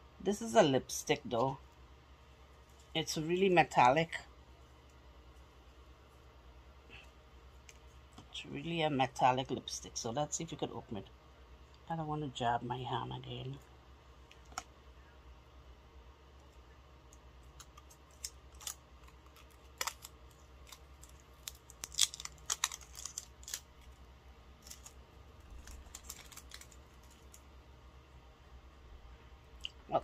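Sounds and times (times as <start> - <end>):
faint low steady hum: 0.0 - 30.0
hands clicking and tapping packaging: 17.1 - 24.0, 24.6 - 27.5.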